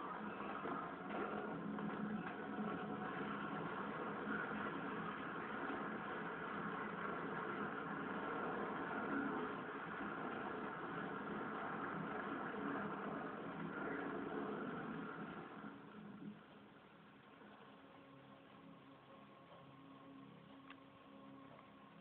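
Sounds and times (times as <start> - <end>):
muffled film soundtrack on television: 0.0 - 22.0.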